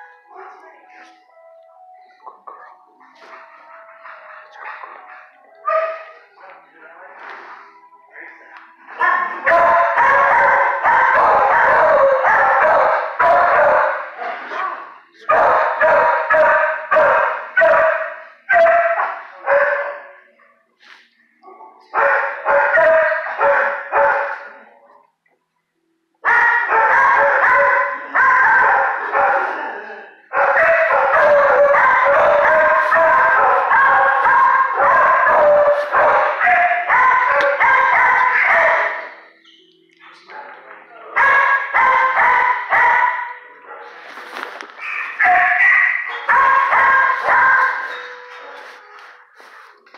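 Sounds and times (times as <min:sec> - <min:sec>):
dogs barking: 0:02.2 - 0:06.6, 0:08.9 - 0:20.7, 0:21.4 - 0:24.7, 0:26.2 - 0:39.4, 0:40.1 - 0:49.7.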